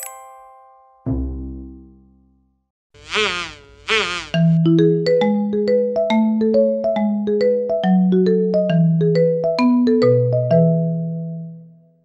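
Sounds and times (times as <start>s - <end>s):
cartoon insect buzz: 3.0s - 4.6s.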